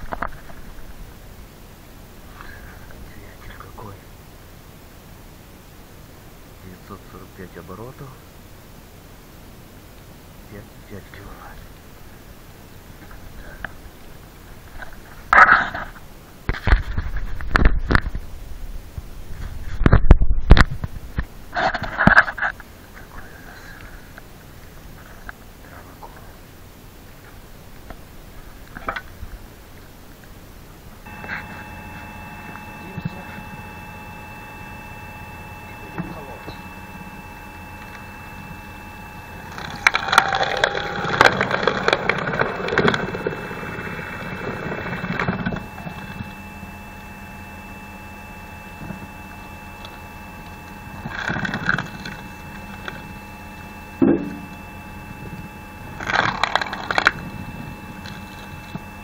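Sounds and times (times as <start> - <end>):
electric motor whining: 31.0 - 59.0
wood creaking and cracking: 37.8 - 46.3, 56.0 - 57.3.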